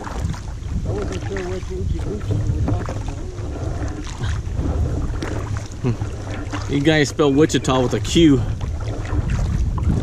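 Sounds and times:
water lapping and splashing: 0:00.0 - 0:10.0
wind rumbling on microphone: 0:00.0 - 0:10.0.

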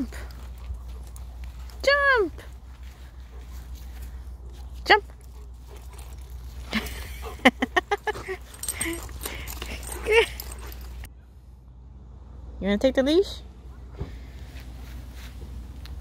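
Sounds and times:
dog whining and yipping: 0:08.1 - 0:11.1.

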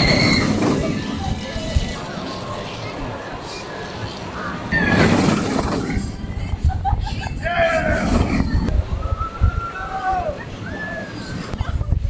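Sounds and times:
roller coaster train rushing past: 0:00.0 - 0:12.0
riders screaming: 0:07.4 - 0:11.5.

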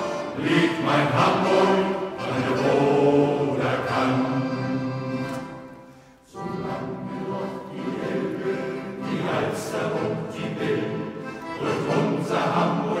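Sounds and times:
male choir singing: 0:00.0 - 0:05.2, 0:06.3 - 0:13.0
accordion: 0:00.0 - 0:13.0.

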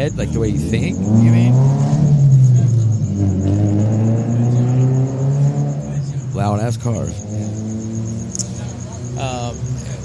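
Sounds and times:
loud car passing by: 0:00.0 - 0:10.0.

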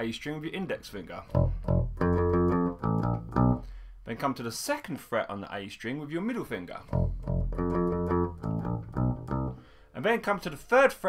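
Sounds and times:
electric bass guitar notes: 0:01.3 - 0:03.9, 0:06.9 - 0:09.7.

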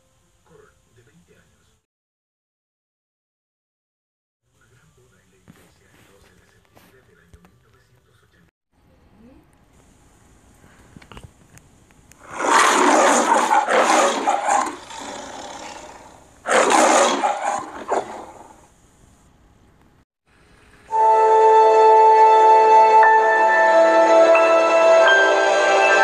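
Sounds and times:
lion roaring: 0:12.2 - 0:18.6.

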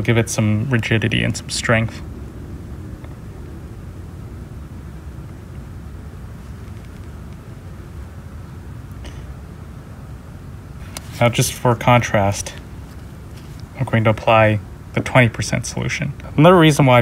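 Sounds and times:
low background rumble: 0:00.0 - 0:17.0.

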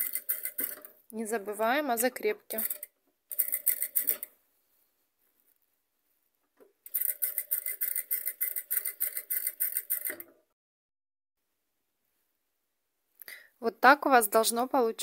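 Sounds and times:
sewing machine stitching: 0:00.0 - 0:00.9, 0:02.5 - 0:04.3, 0:06.9 - 0:10.4.

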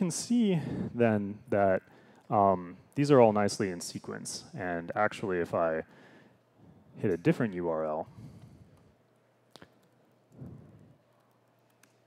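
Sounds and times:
laptop keystrokes: 0:11.0 - 0:12.0.

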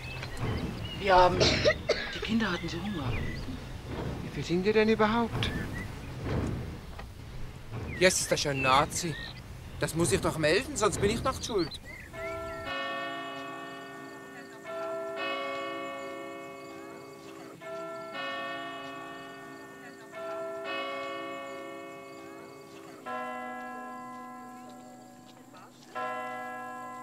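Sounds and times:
church bells ringing: 0:00.0 - 0:27.0
deeper-toned bell: 0:09.9 - 0:27.0.

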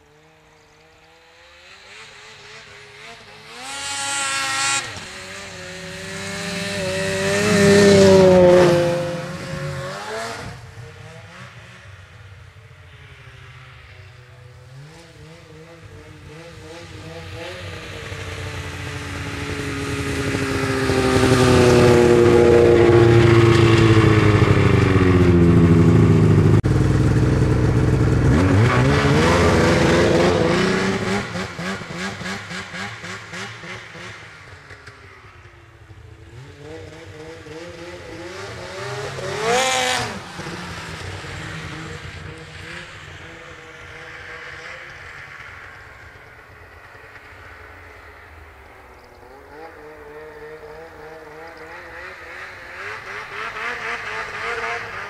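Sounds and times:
snowmobile engine passing by: 0:00.0 - 0:55.0.

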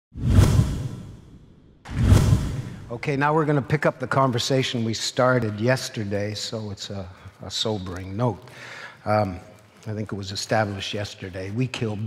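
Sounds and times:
whoosh with deep rumble: 0:00.2 - 0:02.9.

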